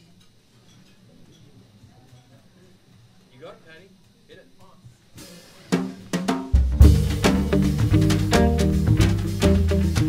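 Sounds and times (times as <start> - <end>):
drum and horn hits: 5.2 - 10.0
jazz band playing bossa nova: 5.2 - 10.0.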